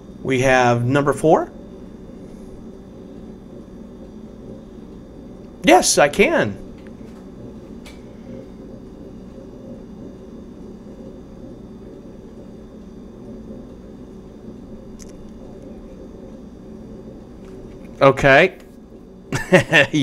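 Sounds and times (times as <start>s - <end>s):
low room hum and rumble: 0.0s - 20.0s.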